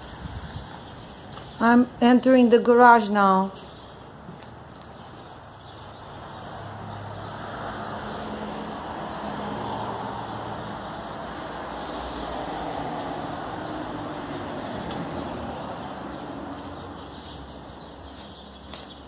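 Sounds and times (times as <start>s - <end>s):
road traffic passing: 0.0s - 19.0s.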